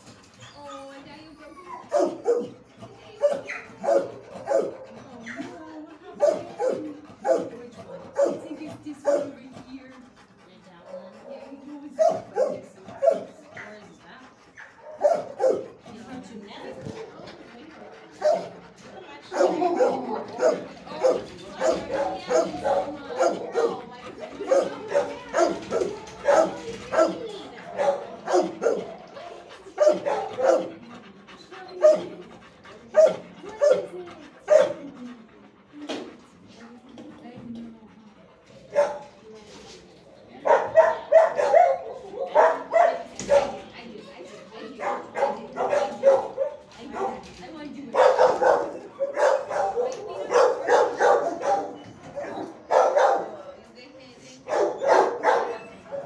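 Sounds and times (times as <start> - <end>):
dogs barking: 1.7 - 4.9, 6.1 - 9.4, 10.9 - 13.8, 14.6 - 15.8, 18.1 - 35.1, 38.6 - 39.1, 40.4 - 43.7, 44.7 - 47.2, 47.9 - 53.4, 54.5 - 56.0.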